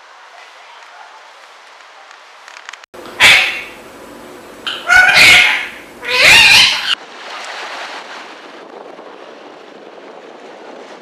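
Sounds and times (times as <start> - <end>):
parakeet calling: 3.1 - 3.8, 4.6 - 7.0.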